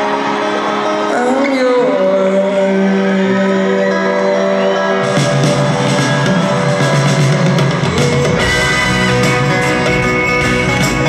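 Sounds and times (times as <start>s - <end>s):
live band held chord: 0.0s - 11.0s
drums: 3.2s - 11.0s.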